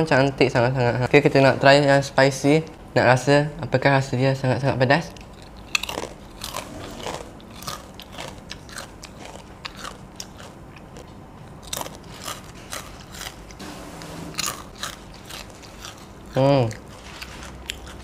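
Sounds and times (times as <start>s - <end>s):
crisp cracker crunching: 5.3s - 13.6s, 14.4s - 18.0s.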